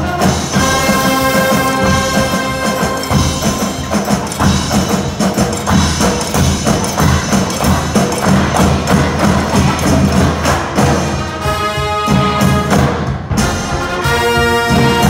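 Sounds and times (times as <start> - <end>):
brass band playing: 0.0 - 15.0
sharp percussion strikes: 0.0 - 15.0.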